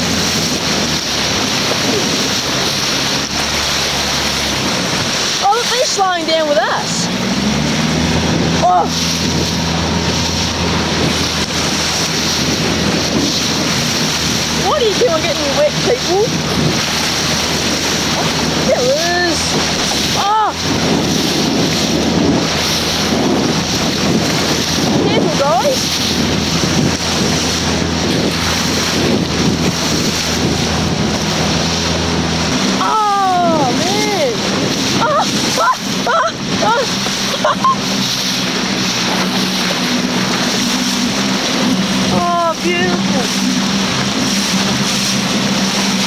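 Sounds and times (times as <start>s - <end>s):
motorboat engine running: 0.0s - 46.0s
water rushing along hull: 0.0s - 46.0s
wind on microphone: 0.0s - 46.0s
people exclaiming: 20.2s - 20.6s, 32.8s - 34.4s, 35.0s - 38.0s.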